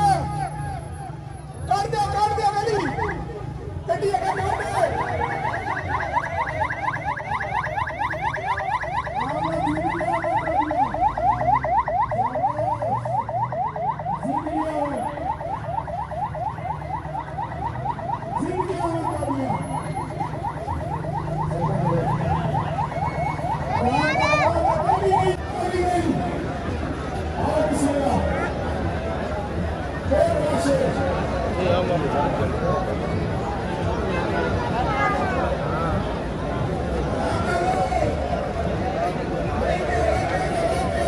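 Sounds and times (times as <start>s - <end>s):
large crowd noise: 0.0s - 41.0s
electronic siren yelping: 2.0s - 25.4s.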